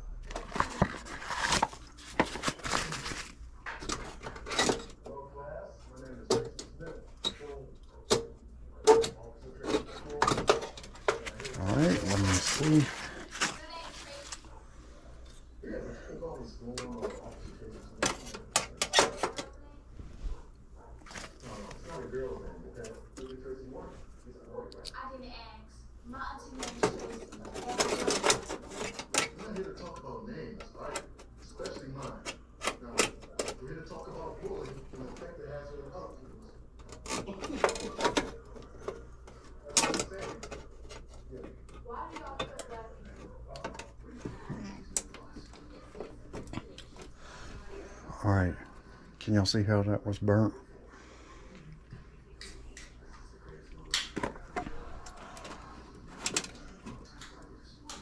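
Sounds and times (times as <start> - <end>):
hands clicking and rattling wires: 53.9 - 58.0.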